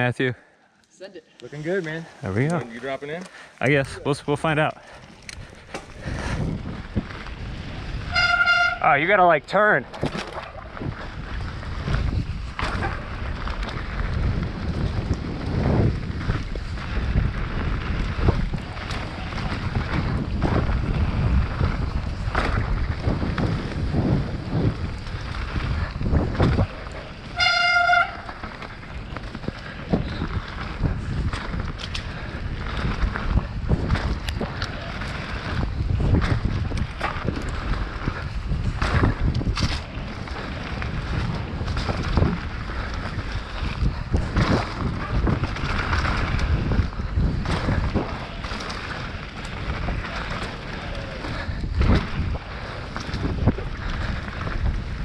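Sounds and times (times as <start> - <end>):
tyres rumbling on dirt: 2.2 - 55.0
wind buffeting microphone: 3.7 - 55.0
bike knocks and rattles: 9.8 - 55.0.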